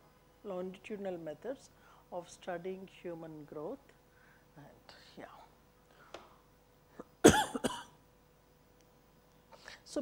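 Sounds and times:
woman coughing: 7.0s - 8.0s.

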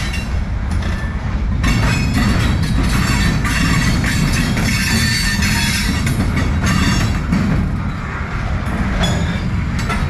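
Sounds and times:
train wheels rumbling on rail: 0.0s - 10.0s
metallic wheel squeal: 2.0s - 6.0s, 6.6s - 7.2s, 9.0s - 9.6s.

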